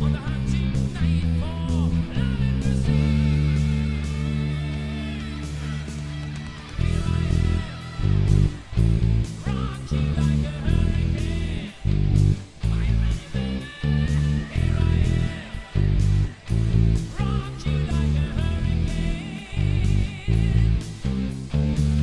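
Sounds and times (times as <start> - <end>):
electric bass played with fingers: 0.0 - 22.0
hard rock band recording: 0.0 - 22.0.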